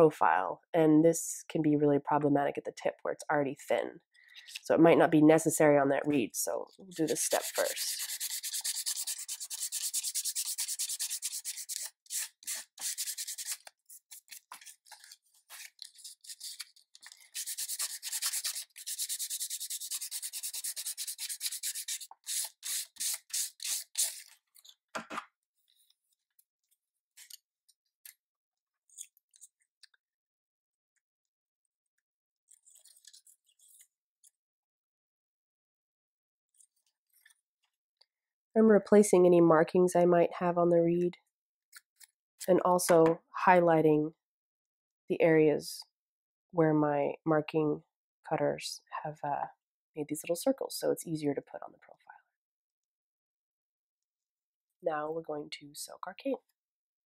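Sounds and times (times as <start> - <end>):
cane rasping on sandpaper: 6.9 - 24.3.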